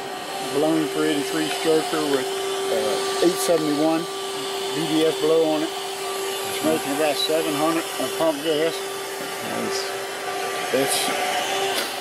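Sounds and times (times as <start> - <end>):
constant hum: 0.0 - 12.0.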